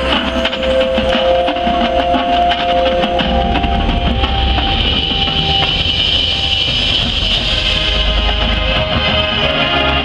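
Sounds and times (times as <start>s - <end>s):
marching band playing: 0.0s - 10.0s.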